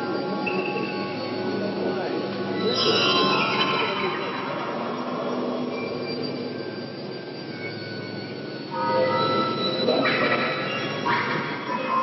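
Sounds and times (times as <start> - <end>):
sustained high tones: 0.0 - 12.0.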